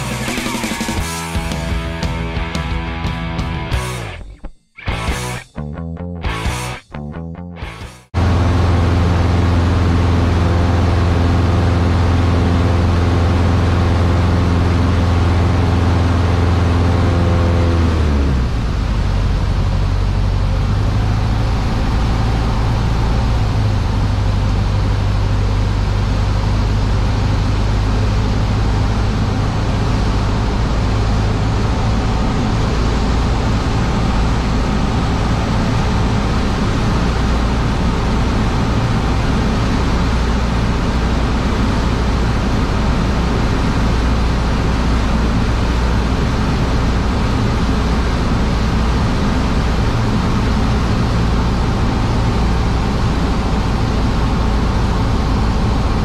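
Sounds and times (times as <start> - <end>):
light aircraft engine droning: 8.2 - 56.0.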